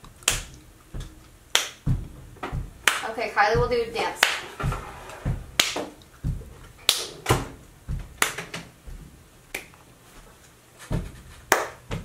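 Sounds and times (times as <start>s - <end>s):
soft low thuds: 0.0s - 12.0s
finger snapping: 0.2s - 0.6s, 9.5s - 9.8s.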